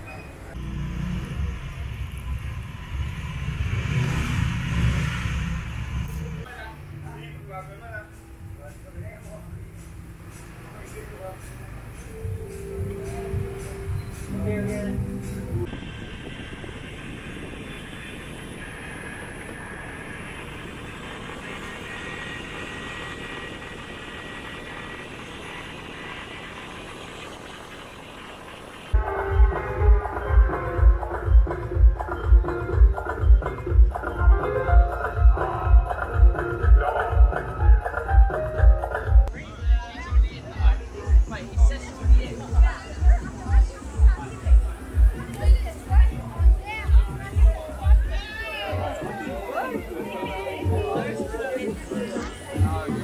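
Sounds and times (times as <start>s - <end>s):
motor vehicle passing: 0.0s - 31.2s
faint engine whine: 0.0s - 34.8s
wind and road noise: 0.0s - 53.0s.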